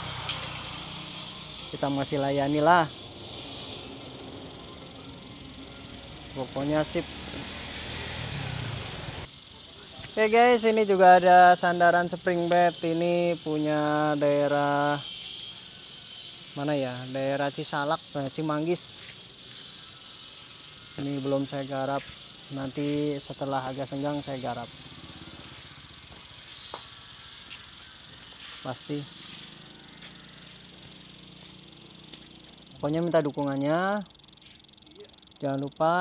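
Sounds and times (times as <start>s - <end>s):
workshop ambience: 0.0s - 36.0s.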